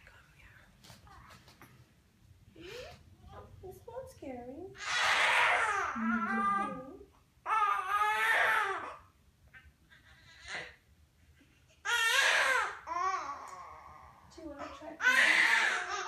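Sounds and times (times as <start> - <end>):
newborn baby crying: 4.8 - 9.2, 9.9 - 10.9, 11.6 - 16.0.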